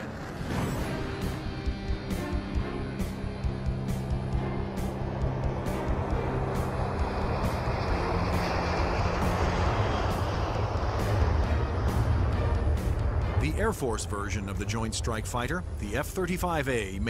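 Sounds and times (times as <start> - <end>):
jet engine roar: 0.0 - 17.0
background music with steady beat: 1.0 - 14.8.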